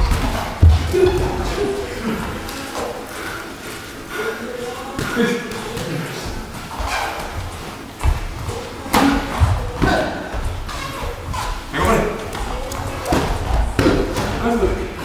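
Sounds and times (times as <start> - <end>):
boxers sparring thuds: 0.0 - 2.0, 5.0 - 15.0
voices in a large hall: 0.0 - 15.0.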